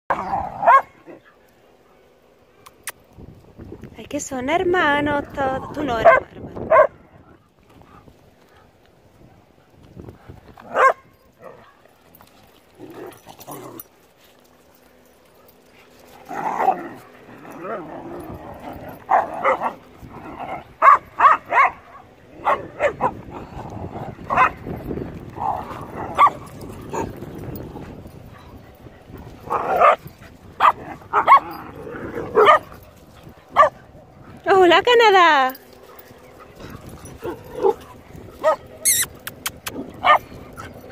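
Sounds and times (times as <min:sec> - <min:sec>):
dogs barking: 0:00.1 - 0:01.4, 0:05.2 - 0:07.4, 0:10.6 - 0:11.9, 0:16.4 - 0:27.6, 0:28.2 - 0:34.0, 0:35.8 - 0:40.9.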